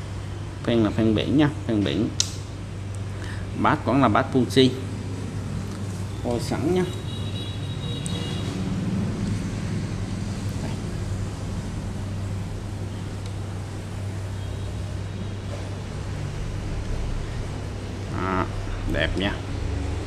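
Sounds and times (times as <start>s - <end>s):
low mechanical hum: 0.0s - 20.0s.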